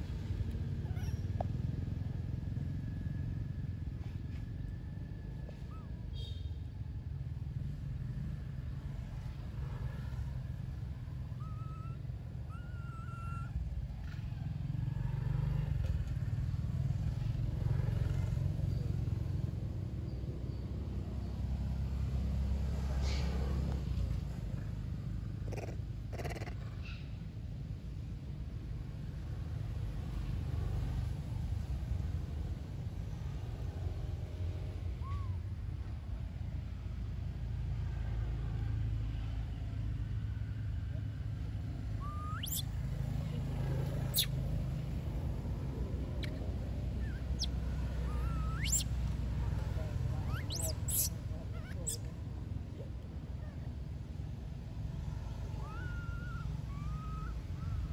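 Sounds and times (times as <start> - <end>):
monkey pulsing calls: 11.3 - 14.2, 25.5 - 26.8, 42.0 - 52.1, 55.5 - 57.9
steady low rumble: 41.2 - 57.9.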